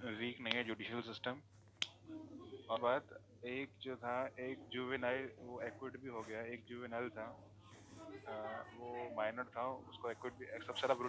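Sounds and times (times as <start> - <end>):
person talking: 2.7 - 7.3, 8.0 - 11.0.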